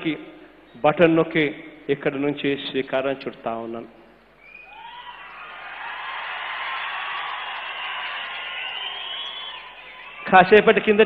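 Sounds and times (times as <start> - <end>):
large crowd cheering: 4.5 - 10.6.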